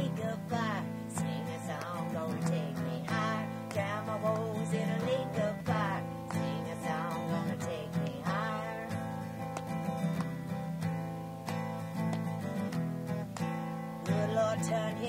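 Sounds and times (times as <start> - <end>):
person singing: 0.0 - 9.3, 14.0 - 15.0
acoustic guitar strumming: 0.0 - 15.0.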